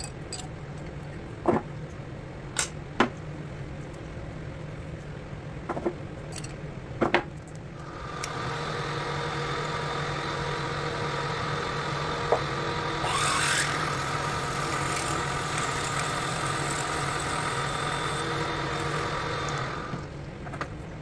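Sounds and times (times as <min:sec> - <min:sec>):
drill press drilling steel: 0:07.8 - 0:20.1.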